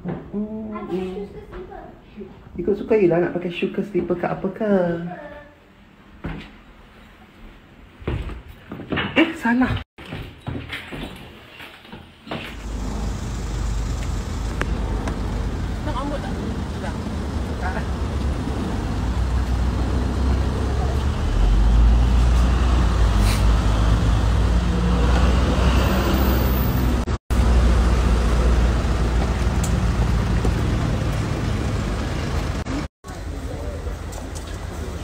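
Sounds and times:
road traffic rumble: 12.4s - 35.0s.

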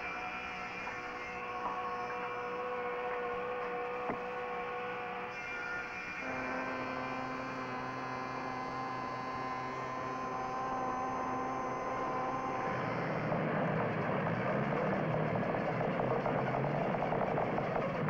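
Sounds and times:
droning hum of held tones: 0.0s - 18.0s.

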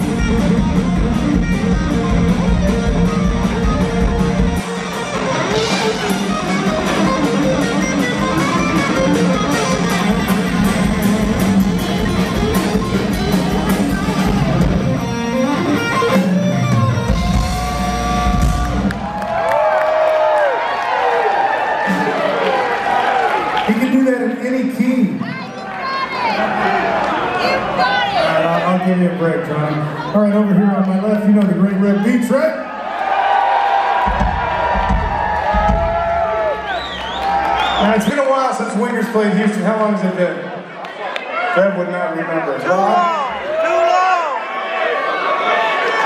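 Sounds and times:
electric guitar solo: 0.0s - 19.3s
drums and bass: 0.0s - 19.4s, 21.8s - 22.7s, 33.9s - 38.1s.

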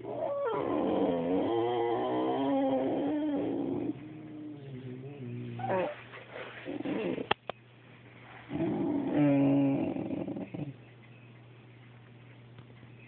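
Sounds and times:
dog grumbling and moaning: 0.0s - 7.4s, 8.5s - 10.8s.

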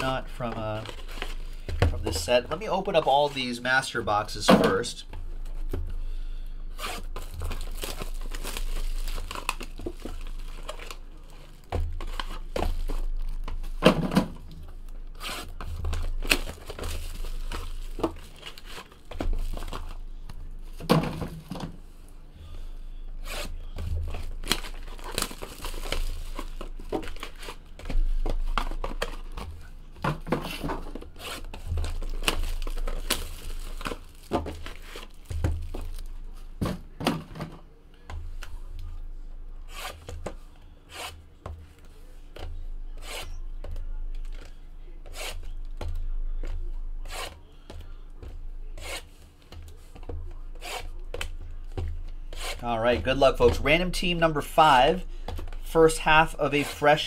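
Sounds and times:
cardboard and wrapper tearing: 6.7s - 13.4s, 24.0s - 27.6s, 31.1s - 36.1s.

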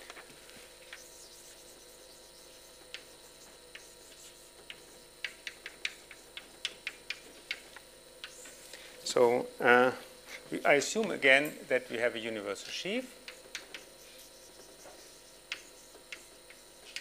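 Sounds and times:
faint room hum: 0.0s - 17.0s
chalk tapping on a blackboard: 0.8s - 7.6s, 13.2s - 17.0s.

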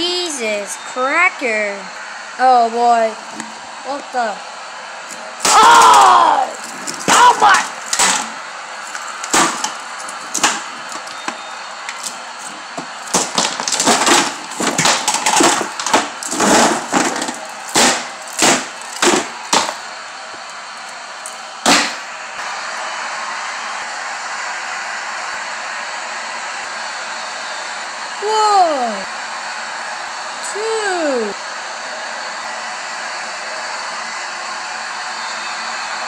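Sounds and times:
plastic toys clattering on wood: 6.6s - 19.8s.

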